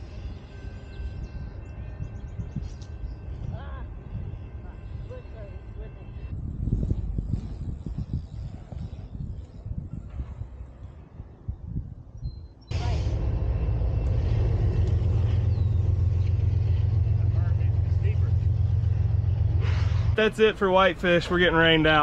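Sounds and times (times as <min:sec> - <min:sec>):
wind buffeting microphone: 0:00.0 - 0:22.0
bicycle rumbling over dirt: 0:06.4 - 0:10.5.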